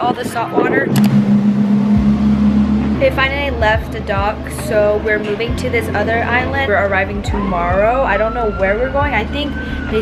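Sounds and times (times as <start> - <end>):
ship horn long low blast: 0.9 - 4.1.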